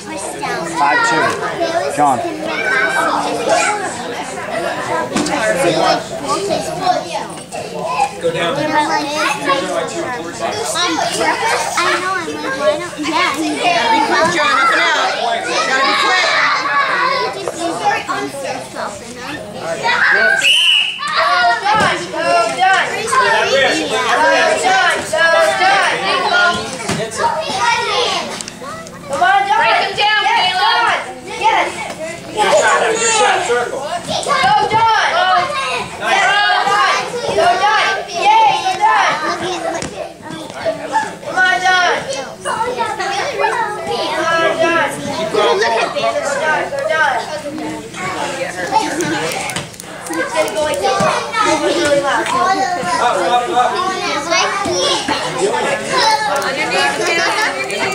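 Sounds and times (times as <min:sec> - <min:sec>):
crowd shouting and cheering: 0:00.0 - 0:07.0, 0:07.7 - 0:57.9
children chattering: 0:00.0 - 0:57.9.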